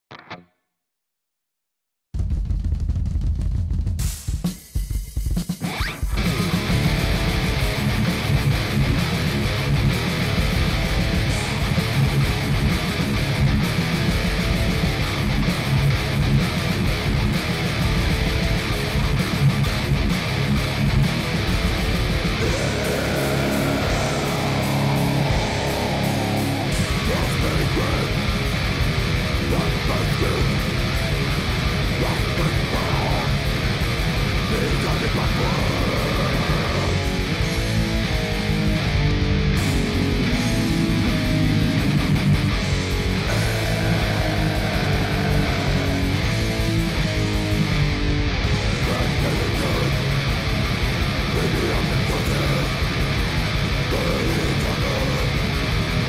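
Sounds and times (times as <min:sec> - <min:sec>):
distorted electric guitar riffs: 0:00.1 - 0:00.6, 0:04.8 - 0:56.0
backing drum track: 0:02.2 - 0:39.0, 0:39.6 - 0:56.0.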